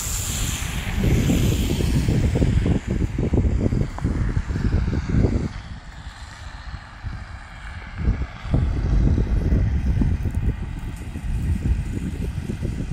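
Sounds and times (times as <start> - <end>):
wind buffeting microphone: 0.0 - 12.9.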